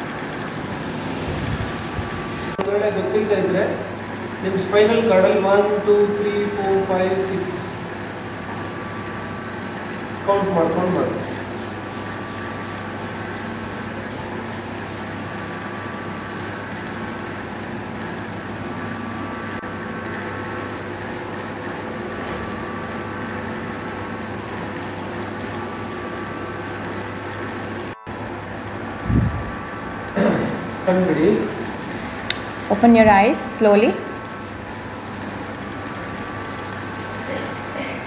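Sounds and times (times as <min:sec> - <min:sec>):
steady room hum: 0:00.0 - 0:38.0.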